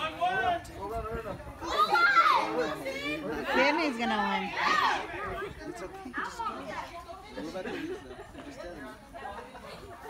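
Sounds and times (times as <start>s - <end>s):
children and adults shouting: 0.0s - 0.8s, 1.5s - 7.0s
people laughing: 7.3s - 10.0s.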